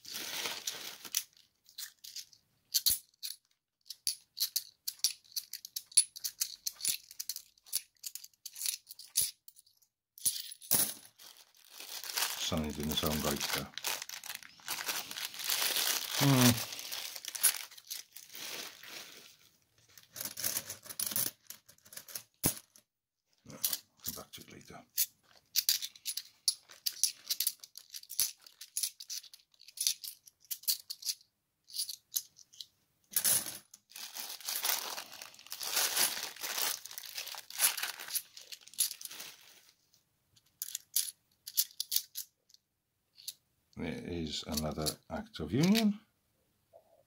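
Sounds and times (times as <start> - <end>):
coins clinking and sliding: 20.2 - 22.6.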